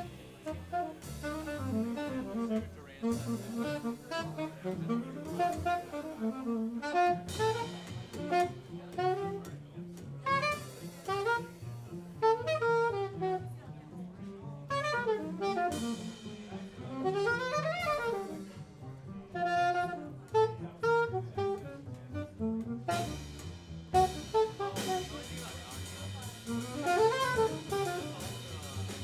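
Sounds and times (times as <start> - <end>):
saxophone improvising: 0.0 - 9.5, 10.2 - 11.6, 12.2 - 13.4, 14.7 - 16.2, 16.8 - 18.5, 19.3 - 23.4, 24.0 - 25.3, 26.5 - 28.5
cymbals: 0.0 - 12.8, 14.9 - 20.3, 22.9 - 29.0
drum kit: 0.0 - 29.0
plucked double bass: 0.0 - 29.0.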